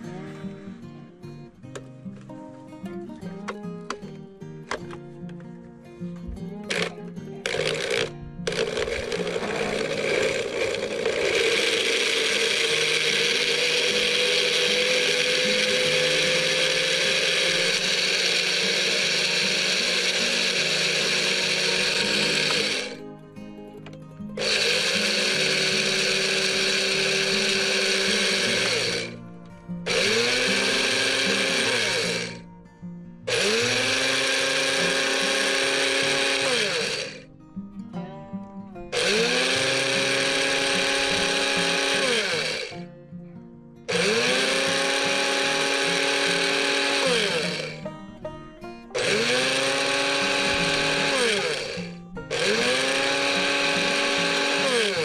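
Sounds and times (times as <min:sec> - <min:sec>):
electric grinder whirring: 0:06.6 - 0:23.1, 0:24.4 - 0:29.2, 0:29.8 - 0:32.4, 0:33.3 - 0:37.2, 0:38.9 - 0:42.9, 0:43.9 - 0:48.0, 0:48.9 - 0:55.0.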